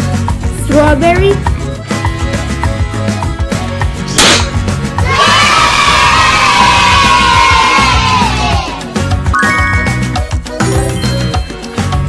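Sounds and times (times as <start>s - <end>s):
background music: 0.0s - 12.0s
confetti popper bang: 4.2s - 4.6s
children cheering: 5.0s - 8.8s.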